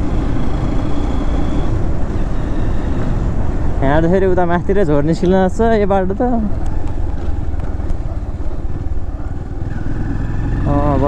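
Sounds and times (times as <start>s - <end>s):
motorcycle engine running: 0.0s - 3.6s, 6.4s - 11.0s
road and wind noise: 0.0s - 11.0s.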